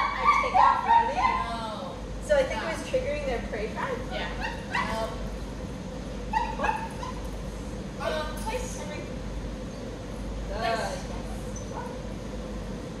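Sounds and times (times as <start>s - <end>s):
dog yipping: 4.3s - 5.1s, 6.3s - 7.3s.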